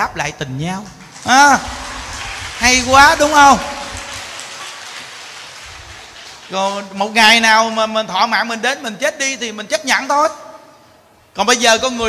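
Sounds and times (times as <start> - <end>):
audience applauding: 1.1 - 7.2.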